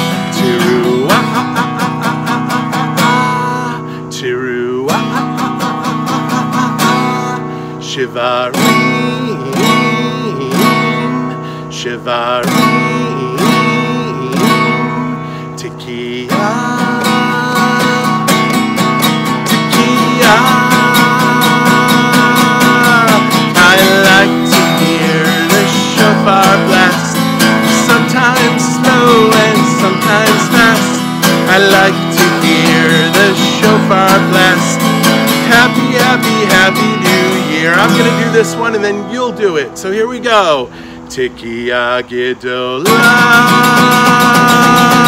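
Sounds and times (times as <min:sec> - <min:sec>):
acoustic guitar strumming: 0:00.0 - 0:45.0
man singing: 0:00.0 - 0:45.0.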